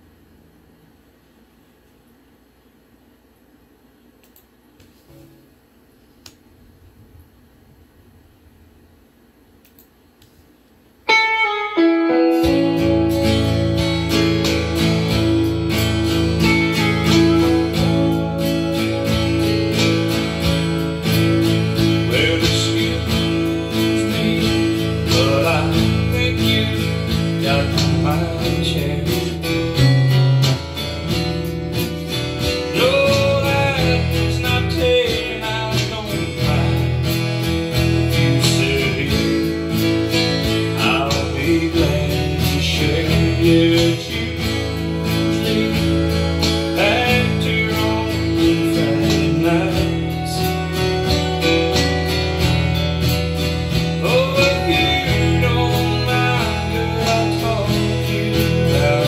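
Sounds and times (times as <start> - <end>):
acoustic guitar strumming: 11.1 - 59.0.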